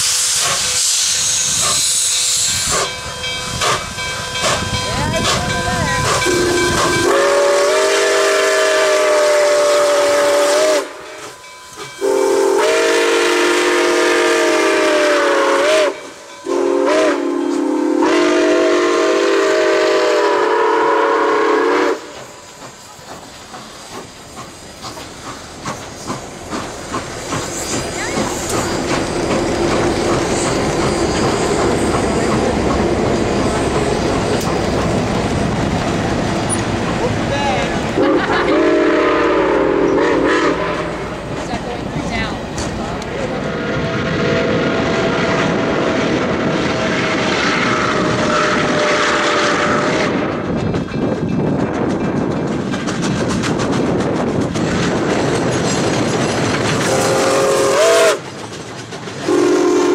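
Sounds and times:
train wheels clattering over rails: 0.0 - 18.6, 19.6 - 59.9
steam locomotive chime whistle: 0.0 - 22.3, 38.0 - 41.1, 46.7 - 50.3, 56.9 - 58.3, 59.2 - 59.9.

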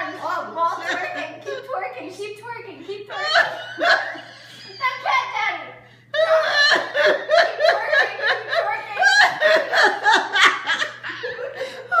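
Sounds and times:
woman laughing hard: 3.1 - 4.9, 6.1 - 12.0.

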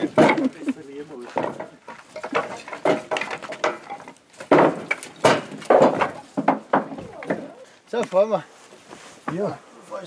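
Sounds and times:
logs knocking into metal trailer: 1.3 - 7.5.

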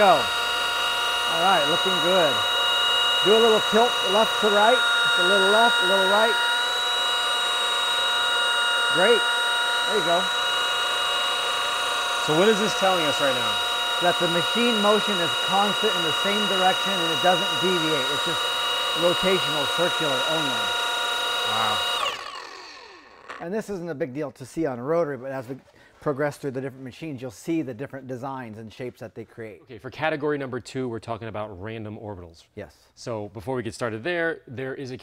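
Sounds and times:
polisher motor whining: 0.0 - 23.5.

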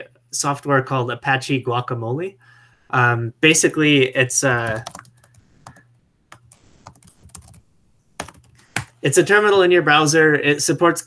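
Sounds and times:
keyboard typing: 4.5 - 9.0.

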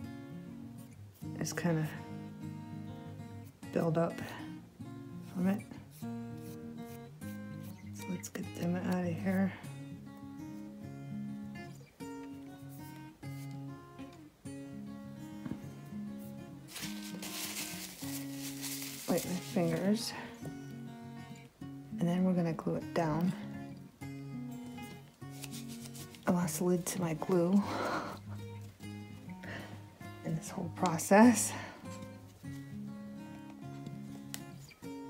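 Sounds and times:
acoustic guitar music: 0.0 - 35.0
rustle: 16.7 - 19.9
person's voice: 19.0 - 20.3, 26.3 - 27.8.

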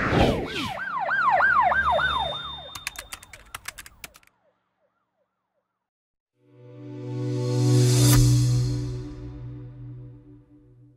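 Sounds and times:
police siren yelping: 0.6 - 3.2
sharp clicks: 2.7 - 4.4.

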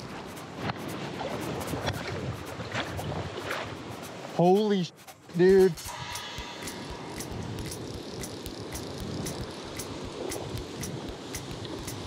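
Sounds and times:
fishing reel drag clicking: 5.0 - 12.0.

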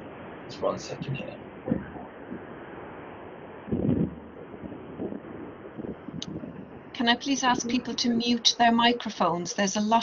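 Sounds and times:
microphone rumble: 0.0 - 8.8
phone-quality hiss: 0.0 - 10.0.

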